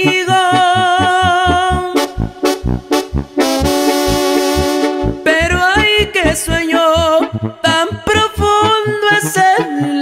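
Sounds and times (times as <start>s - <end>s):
brass band playing: 0.0s - 9.2s.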